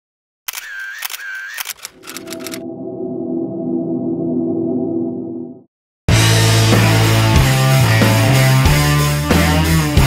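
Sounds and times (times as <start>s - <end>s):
camera shutter and motor-wind: 0.5s - 2.6s.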